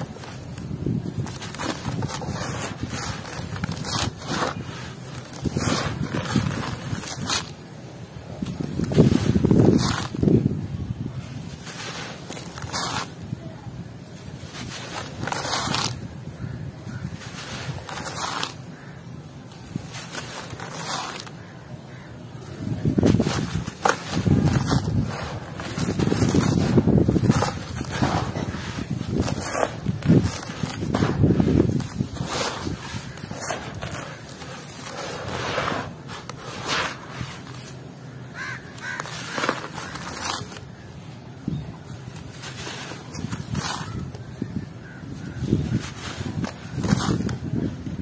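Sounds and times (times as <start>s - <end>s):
grains rustling: 11.2s - 13.3s, 16.9s - 18.9s, 19.5s - 40.8s
hands crushing gritty powder: 16.9s - 21.6s, 22.8s - 40.7s, 42.1s - 44.2s
dry grains trickling and crunching: 22.9s - 40.7s.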